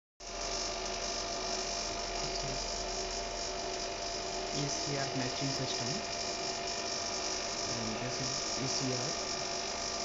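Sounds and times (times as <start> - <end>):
electrical hum: 0.2 - 10.0.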